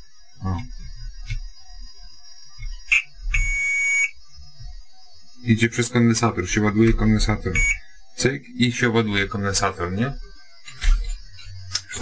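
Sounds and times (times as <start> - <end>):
multimeter chirp: 2.5 - 9.0
multimeter continuity beep: 2.6 - 4.2, 6.5 - 7.9.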